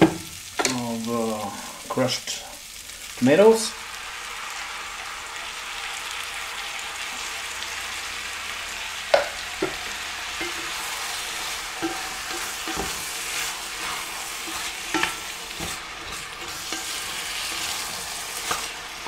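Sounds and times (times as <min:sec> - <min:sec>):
food sizzling in a pot: 0:00.0 - 0:19.0.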